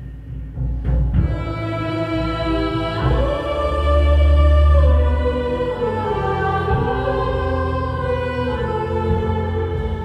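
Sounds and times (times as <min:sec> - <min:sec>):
choir-like singing: 0:01.2 - 0:10.0.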